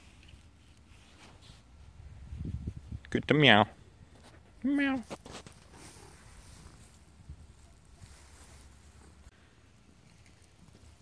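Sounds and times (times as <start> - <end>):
faint rustling: 4.1 - 11.0.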